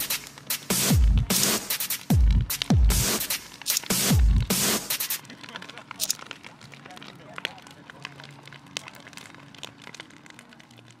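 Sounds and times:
bonfire crackling with sharp snaps: 0.0 - 11.0.

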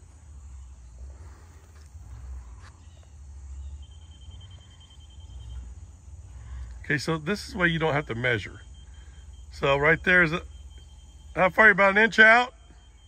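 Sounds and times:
thin high tone: 3.5 - 13.0.

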